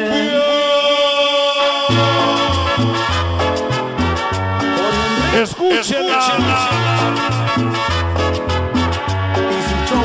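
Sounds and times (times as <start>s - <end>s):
instrumental cumbia music: 0.0s - 10.0s.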